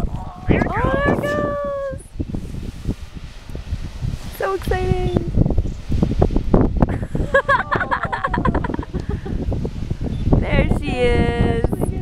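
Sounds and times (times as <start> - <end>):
geyser rushing water and steam: 0.0 - 12.0
wind buffeting microphone: 0.0 - 12.0
person laughing: 6.9 - 9.4.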